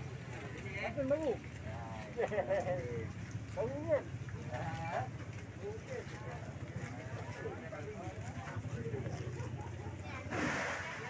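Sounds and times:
crowd voices: 4.4s - 11.0s.

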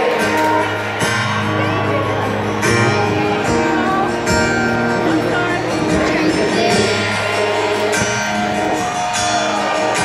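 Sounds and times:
crowd voices: 0.0s - 10.0s
strummed acoustic guitar ballad: 0.0s - 10.0s.

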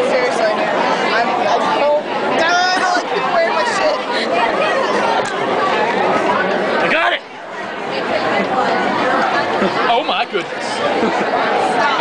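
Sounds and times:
crowd chatter in large room: 0.0s - 12.0s.

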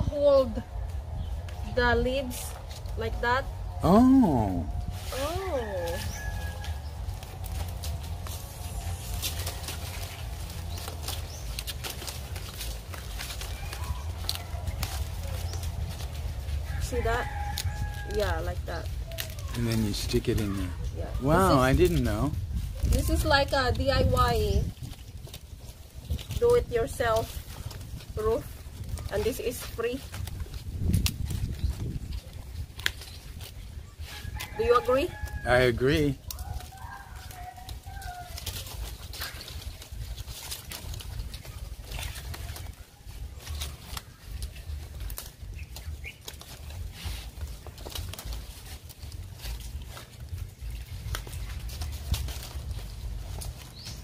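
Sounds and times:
steady low rumble: 0.0s - 19.5s
palm leaves rustling and crackling: 0.0s - 54.0s.

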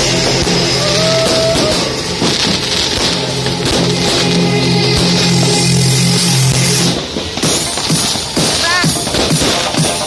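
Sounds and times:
loud rock music: 0.0s - 10.0s.

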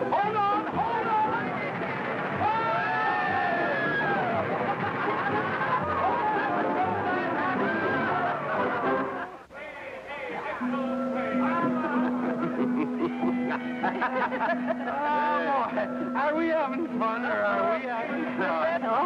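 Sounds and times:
background music: 0.0s - 9.4s, 10.3s - 19.0s
people shrieking on roller coaster: 2.4s - 4.8s, 5.8s - 9.3s.

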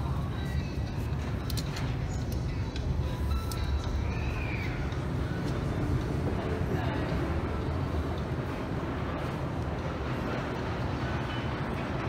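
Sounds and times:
murmuring voices: 0.0s - 9.3s
faint background music: 0.0s - 12.0s
steady low rumble: 0.0s - 12.0s.

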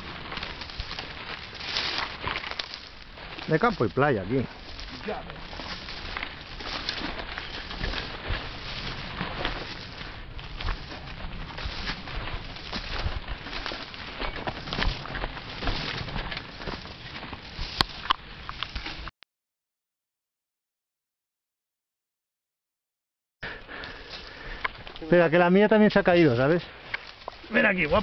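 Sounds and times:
bikes crackling and knocking: 0.0s - 19.1s, 23.5s - 28.0s
footsteps crunching dry leaves: 0.0s - 19.1s, 23.7s - 28.0s.

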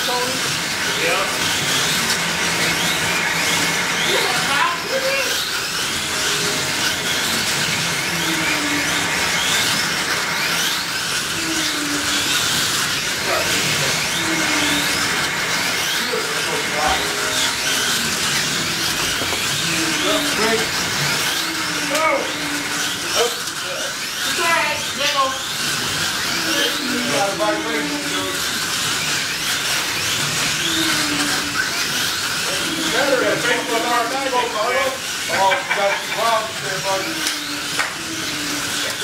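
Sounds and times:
slot car motors whining: 0.0s - 39.0s
voices chattering: 0.0s - 39.0s.

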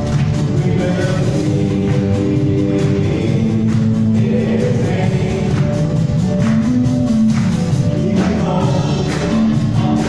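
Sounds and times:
people singing: 0.0s - 6.7s, 7.5s - 10.0s
acoustic guitar: 0.0s - 10.0s
drum kit beat: 0.0s - 10.0s
electric guitar: 0.0s - 10.0s.

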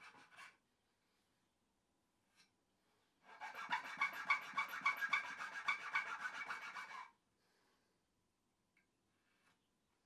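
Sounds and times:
needle file rasping on wood: 3.3s - 7.1s.

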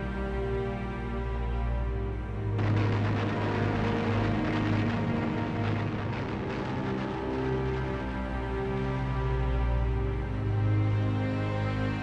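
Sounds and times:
soundtrack music: 0.0s - 12.0s
aircraft engines roaring: 2.6s - 8.2s.

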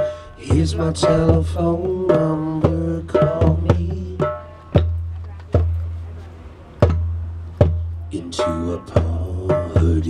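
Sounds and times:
hand drum booming hits: 0.5s - 5.8s
person singing: 8.1s - 10.0s.

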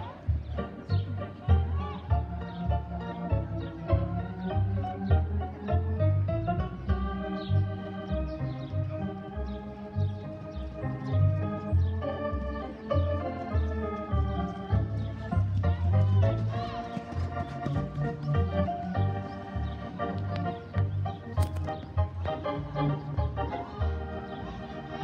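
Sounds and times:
organ music over loudspeakers: 0.0s - 25.0s.

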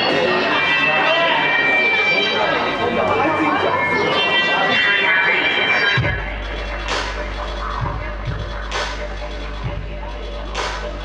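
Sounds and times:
music with sustained high tones: 0.0s - 11.0s.

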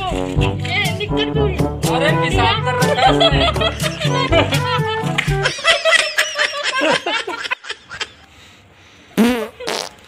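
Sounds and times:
fart sounds: 9.2s - 10.0s.

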